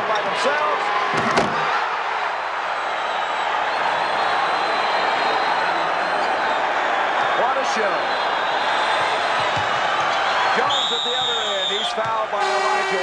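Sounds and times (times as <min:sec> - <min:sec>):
arena crowd cheering: 0:00.0 - 0:13.0.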